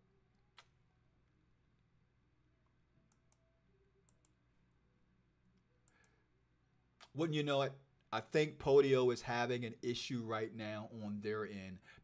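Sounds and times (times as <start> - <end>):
computer mouse clicks: 3.1 - 4.4, 5.8 - 6.2.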